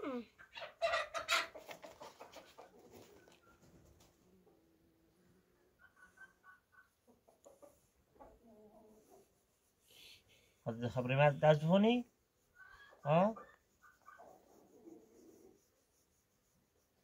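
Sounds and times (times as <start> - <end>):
chicken clucking: 0.1 - 4.7, 5.4 - 9.4, 12.4 - 15.6.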